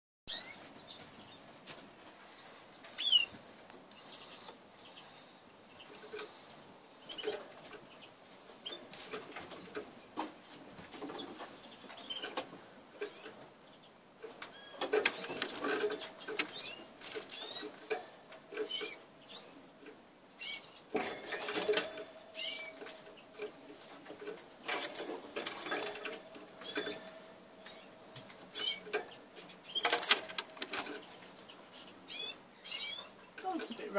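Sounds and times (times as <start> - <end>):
canary chirp calls: 0.3 - 1.4, 3.0 - 3.4, 13.0 - 15.6, 18.6 - 19.6, 20.4 - 21.6, 22.3 - 23.3, 26.6 - 30.0, 31.5 - 33.9
rustling and wing flutter: 14.2 - 19.0, 20.9 - 31.5.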